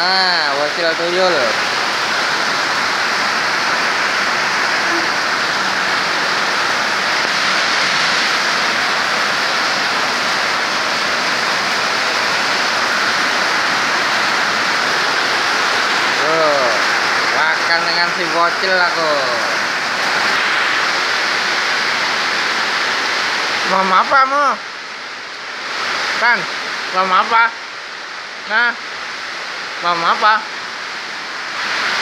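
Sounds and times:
person speaking: 0.0s - 1.9s, 3.7s - 9.8s, 13.7s - 19.7s, 26.2s - 27.6s, 28.4s - 28.8s, 29.8s - 30.5s
rain falling steadily: 0.0s - 32.0s.

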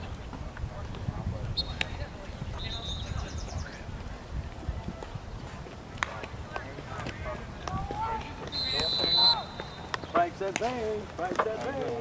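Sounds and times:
wind rumbling on microphone: 0.0s - 10.1s
faint distant voices: 0.0s - 12.0s.

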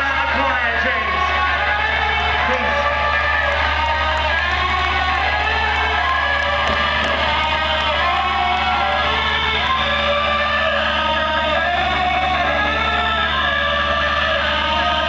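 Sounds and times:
guitar feedback drone: 0.0s - 15.0s
low amp hum: 0.0s - 15.0s
crowd cheering and whooping: 0.1s - 15.0s.

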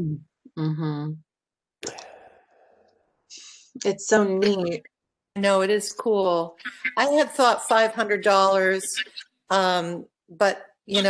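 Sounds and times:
person speaking: 1.8s - 2.5s, 3.4s - 11.0s
person sighing: 1.8s - 2.6s.

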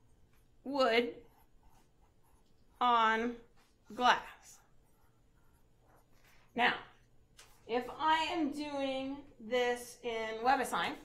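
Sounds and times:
marker scratching on paper: 0.2s - 8.0s.

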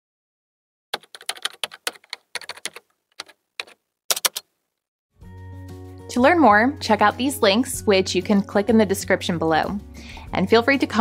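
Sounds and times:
keyboard key clicks: 1.0s - 4.5s.

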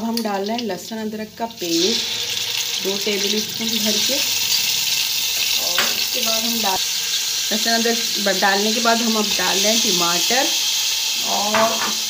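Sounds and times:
paste and onions sizzling in oil: 0.0s - 12.0s.

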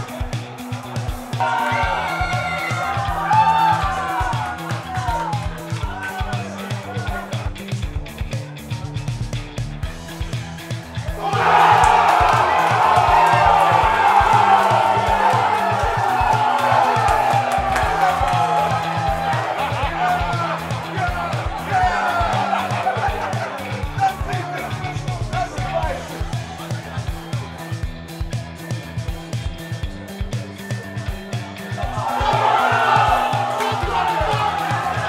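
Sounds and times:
crowd cheering and shouting: 0.0s - 35.0s
music with steady beat: 0.0s - 35.0s.

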